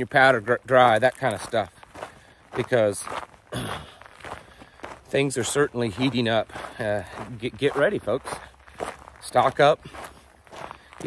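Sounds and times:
footsteps walking: 0.0s - 11.0s.

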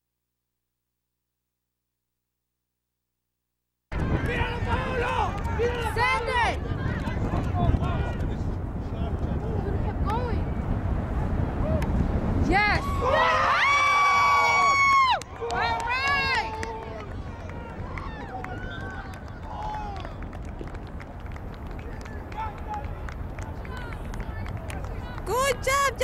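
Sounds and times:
distant voices cheering: 12.7s - 20.6s.

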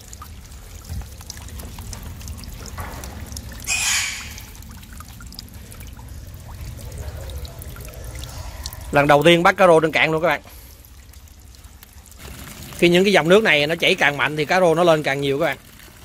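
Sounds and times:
water trickling and pouring: 0.0s - 16.0s.

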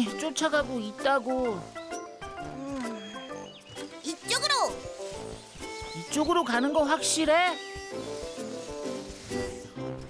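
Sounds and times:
light cartoon background music: 0.0s - 10.0s.

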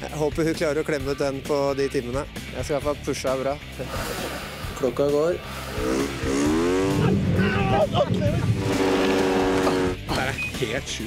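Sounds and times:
snowmobile engines revving: 3.8s - 11.0s
voices shouting: 6.8s - 10.3s.

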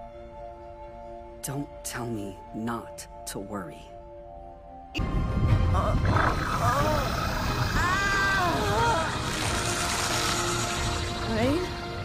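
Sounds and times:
dramatic music: 3.1s - 12.0s
woman groaning and growling: 6.4s - 11.8s.

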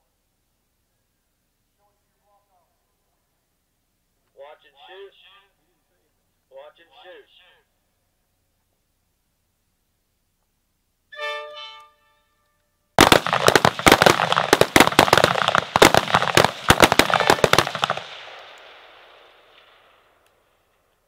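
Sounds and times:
short pitched tone: 11.1s - 12.3s
rapid rifle gunfire: 13.0s - 18.9s
gunfire echo: 13.0s - 20.8s.

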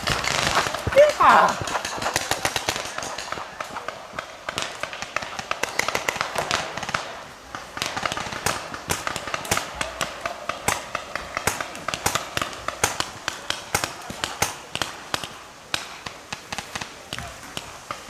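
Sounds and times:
paintball markers firing: 0.0s - 18.0s.

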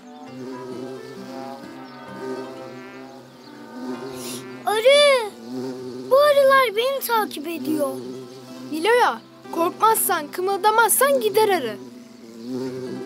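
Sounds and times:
light background music: 0.0s - 5.0s, 5.6s - 13.0s
cartoon bee buzzing: 0.0s - 13.0s.

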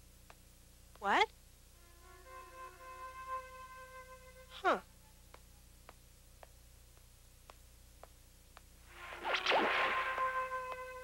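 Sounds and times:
ringing high chord: 1.8s - 4.8s
faint footstep taps: 5.3s - 8.8s
swishing whoosh: 8.9s - 10.5s.

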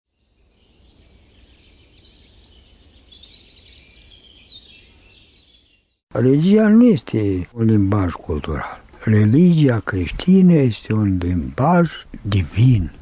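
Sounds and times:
birds chirping: 0.1s - 13.0s.

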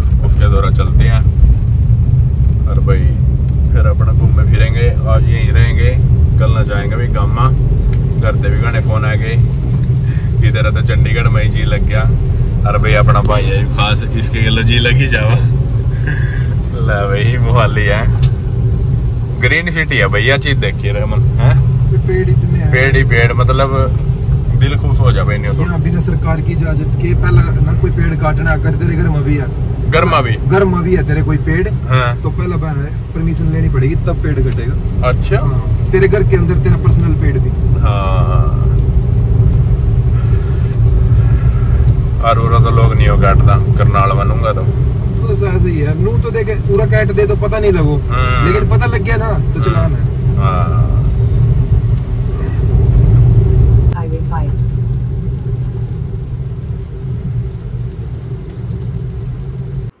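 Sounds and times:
people talking: 0.0s - 1.3s, 2.7s - 7.6s, 8.2s - 9.4s, 10.4s - 12.1s, 12.7s - 15.5s, 16.1s - 18.3s, 19.4s - 38.8s, 41.5s - 51.1s, 53.9s - 54.6s
car road noise on wet road: 0.0s - 60.0s.

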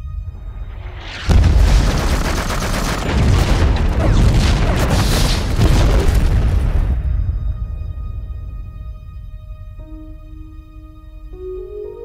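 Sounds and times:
rumbling blasts: 0.0s - 11.0s
loud explosion: 0.3s - 8.0s
rapid crackling gunfire: 1.3s - 6.9s.

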